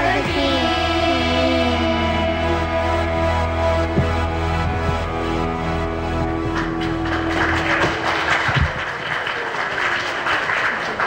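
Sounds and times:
music final held chord: 0.3s - 8.5s
audience applauding: 6.2s - 11.0s.

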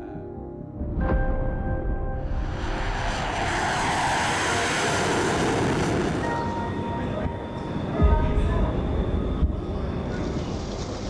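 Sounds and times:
background music: 0.0s - 3.2s, 5.0s - 11.0s
tank engines and tracks rumbling: 2.4s - 11.0s.

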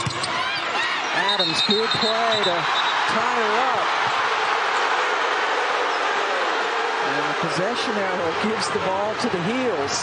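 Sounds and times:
arena crowd voices: 0.3s - 10.0s.

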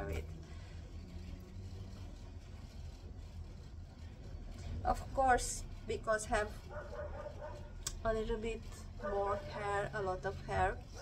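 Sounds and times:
woman speaking: 0.0s - 0.3s, 4.8s - 6.6s, 7.9s - 11.0s
low steady rumble: 0.0s - 11.0s.

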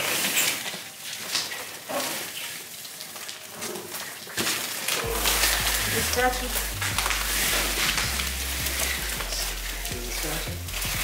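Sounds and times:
fir branches rustling: 0.0s - 11.0s
background music with bass line: 5.0s - 11.0s.

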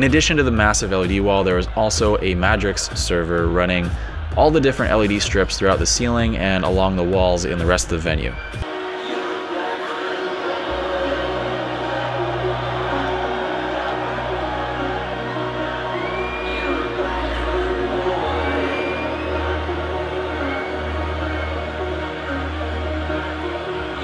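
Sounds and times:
synth chords: 8.4s - 24.0s.

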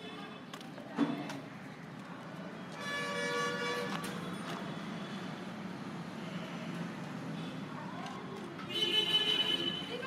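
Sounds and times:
low hum of street traffic: 0.0s - 10.0s
vehicle horn: 2.8s - 3.9s.

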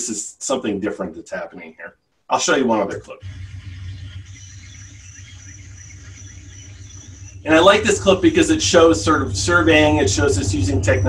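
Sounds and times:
high insect trill: 3.2s - 11.0s
low steady hum: 3.2s - 11.0s.

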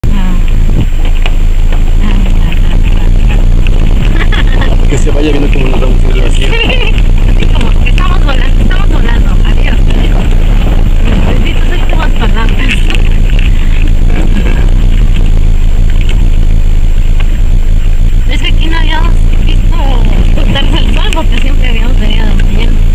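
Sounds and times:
vehicle rumbling on gravel road: 0.0s - 22.9s.

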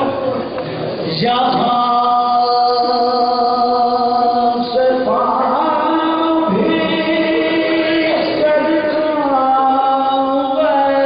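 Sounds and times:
men chanting elegy unaccompanied: 1.5s - 11.0s.

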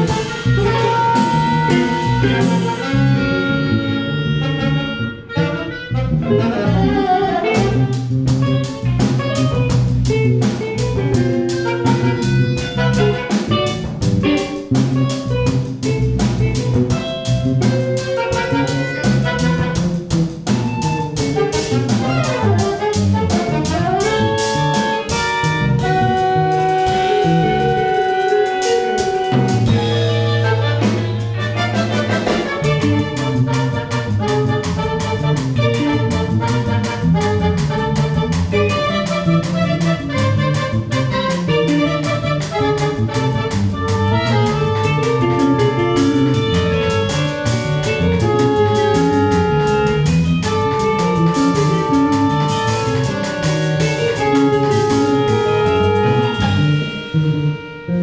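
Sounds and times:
drum kit fast beat: 0.0s - 4.0s, 7.4s - 56.9s
orchestra and rock band playing: 0.0s - 58.0s.

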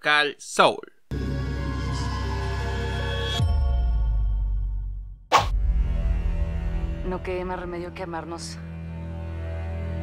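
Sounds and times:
low trailer music with held tones: 1.1s - 10.0s.

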